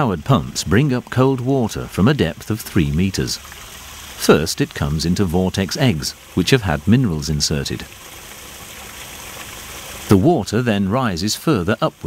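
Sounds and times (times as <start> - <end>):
water pouring and splashing: 0.0 - 12.0.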